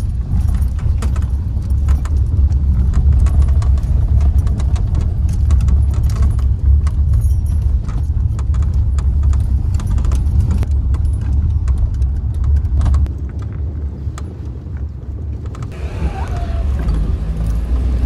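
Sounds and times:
light rattling clicks: 0.0 - 14.6
road and engine rumble: 0.0 - 18.0.

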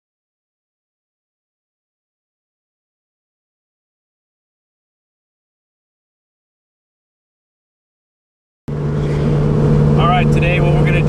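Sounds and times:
car engine drone inside cabin: 8.7 - 11.0
man talking: 10.0 - 11.0.

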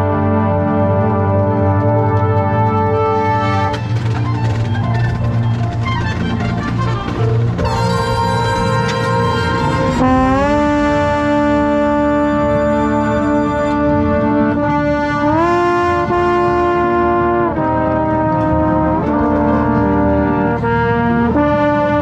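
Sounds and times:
trombone holding long notes: 0.0 - 22.0.

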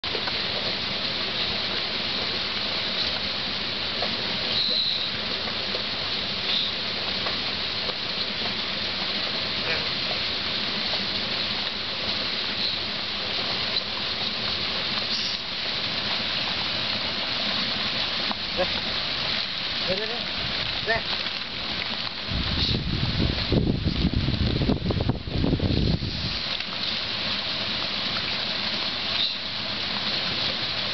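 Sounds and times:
rain falling: 0.0 - 30.9.

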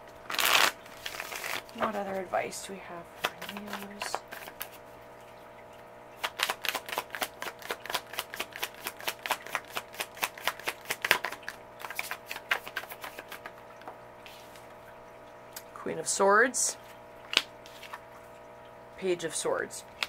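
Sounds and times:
cards being shuffled: 0.3 - 2.2, 3.2 - 4.8, 6.2 - 14.8, 17.3 - 18.0.

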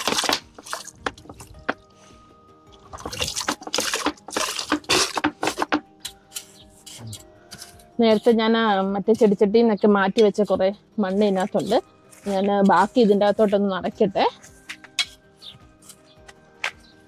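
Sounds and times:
soil pouring into plastic pots: 0.0 - 1.8, 2.7 - 5.7
quiet background music: 0.0 - 17.0
trowel scraping potting mix: 0.0 - 17.0.

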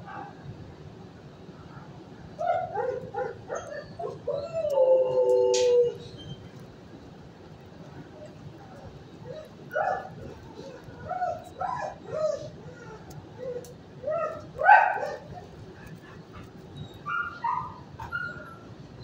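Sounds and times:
dogs barking and yipping: 2.4 - 6.1, 9.2 - 18.8.

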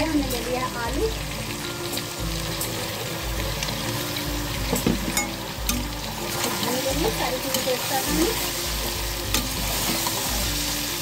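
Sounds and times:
meat sizzling in oil: 0.0 - 11.0.

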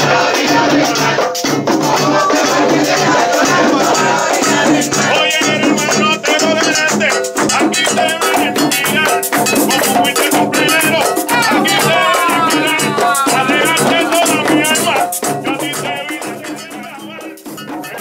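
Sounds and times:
frame drums beating: 0.0 - 18.0
rattling percussion: 0.0 - 18.0
voices singing: 0.0 - 18.0.

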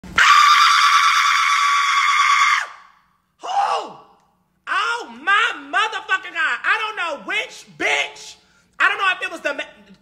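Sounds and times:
person screaming: 0.2 - 5.2.

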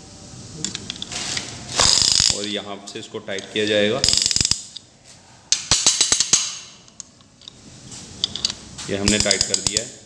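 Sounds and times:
ratchet clicking: 1.8 - 2.5, 4.0 - 4.8, 8.3 - 9.9.

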